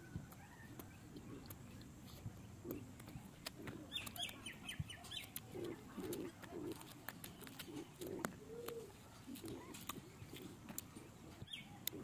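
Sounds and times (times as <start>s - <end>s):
dove cooing: 2.6s - 12.0s.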